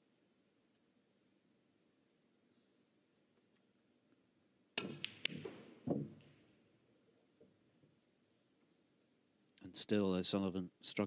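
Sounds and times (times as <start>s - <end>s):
cue tip clicking on ball: 4.8s - 5.6s
balls clicking together: 4.8s - 6.4s.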